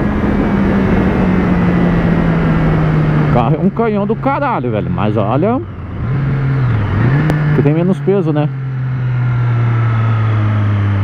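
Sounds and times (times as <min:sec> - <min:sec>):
wind noise on microphone: 0:00.0 - 0:03.6
motorcycle engine running: 0:00.0 - 0:11.0.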